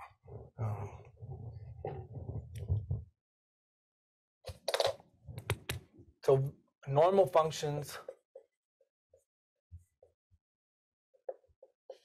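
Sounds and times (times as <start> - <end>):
marker writing on whiteboard: 1.1 - 3.0, 4.6 - 5.9.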